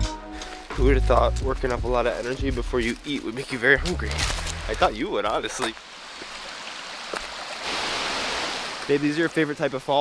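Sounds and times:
footsteps on rock: 0.4s - 6.4s
mountain stream rushing: 4.4s - 10.0s.

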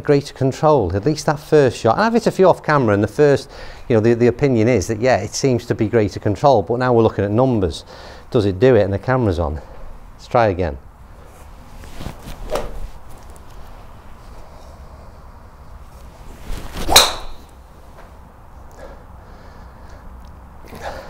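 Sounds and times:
golf club swishing: 11.2s - 14.8s, 15.7s - 18.1s
club striking golf ball: 16.8s - 17.6s.

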